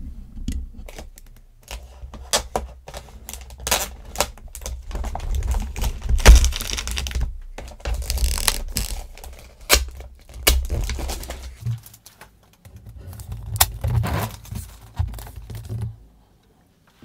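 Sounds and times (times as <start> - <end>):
plastic film crackling and peeling: 0.8 - 16.0.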